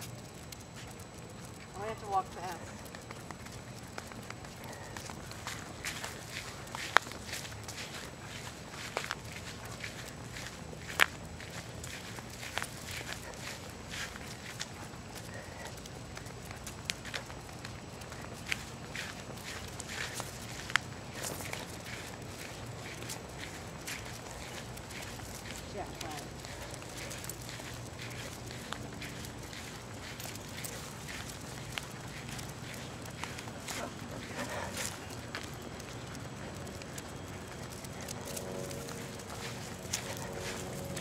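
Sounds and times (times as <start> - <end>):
footsteps on concrete: 0.0 - 41.0.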